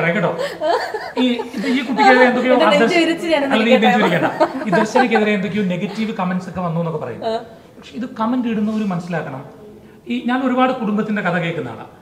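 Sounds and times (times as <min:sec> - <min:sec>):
people talking: 0:00.0 - 0:07.4
people chuckling: 0:00.1 - 0:06.8.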